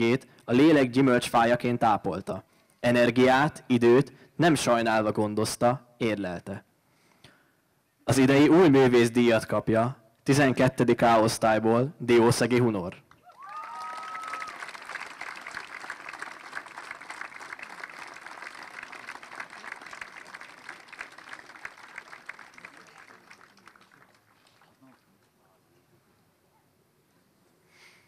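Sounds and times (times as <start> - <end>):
audience applauding: 13.2 - 25.2.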